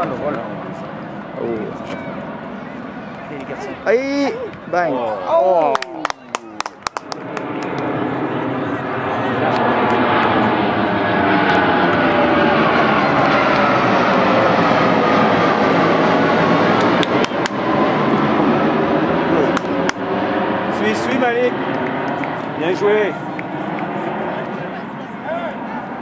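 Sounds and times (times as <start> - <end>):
jet aircraft passing overhead: 0.0 - 26.0
jet engine whine: 0.0 - 26.0.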